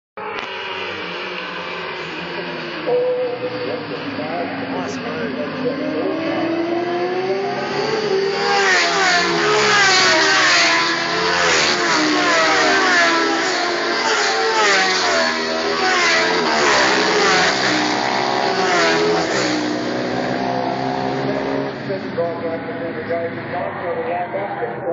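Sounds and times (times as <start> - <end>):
racing motorcycles accelerating: 0.2 - 24.9.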